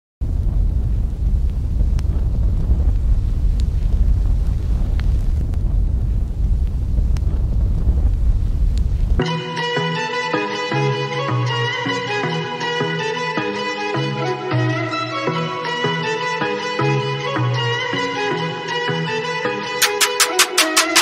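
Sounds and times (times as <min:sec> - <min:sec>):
loud low rumble: 0:00.2 - 0:09.2
melodic music: 0:09.2 - 0:21.0.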